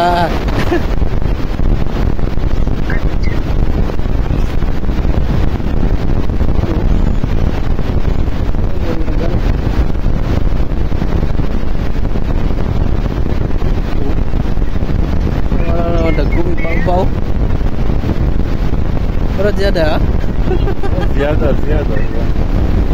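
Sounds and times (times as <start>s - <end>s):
wind buffeting microphone: 0.0s - 22.9s.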